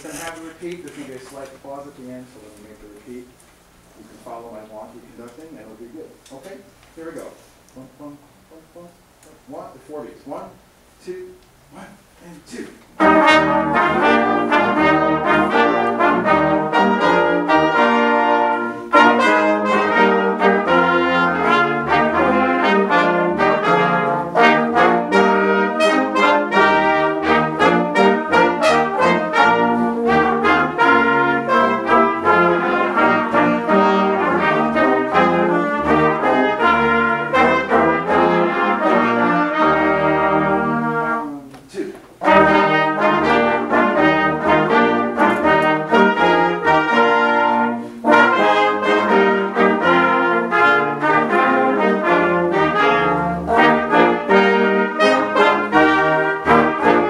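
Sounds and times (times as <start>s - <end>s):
brass ensemble playing: 0.0s - 6.0s, 6.6s - 57.0s.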